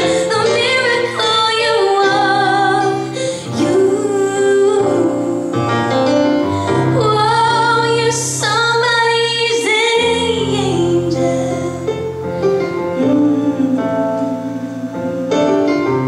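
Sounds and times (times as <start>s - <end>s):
woman singing into microphone: 0.0s - 12.2s, 12.9s - 15.4s.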